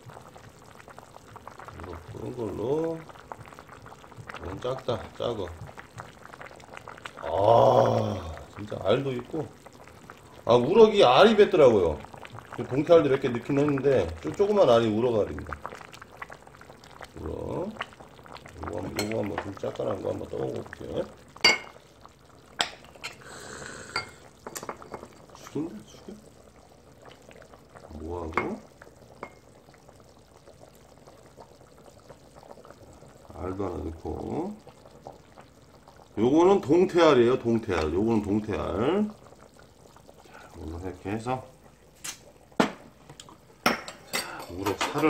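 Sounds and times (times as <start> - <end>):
broth pouring into bowl: 0.0 - 44.8.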